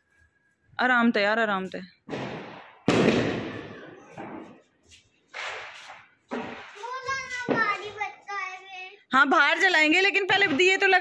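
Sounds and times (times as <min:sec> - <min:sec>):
firecrackers banging: 0:02.0 - 0:08.2, 0:10.2 - 0:11.0.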